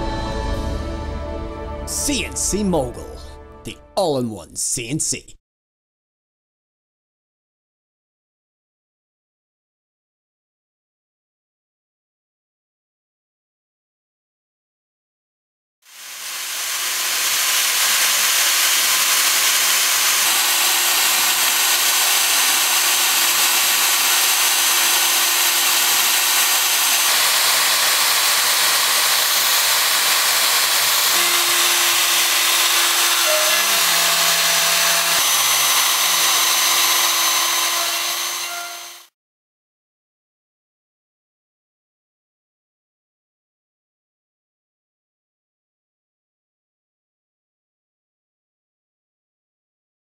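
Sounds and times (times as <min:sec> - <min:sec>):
hiss of cutting foam: 0:15.9 - 0:33.4
router spindle high whine: 0:15.9 - 0:39.1.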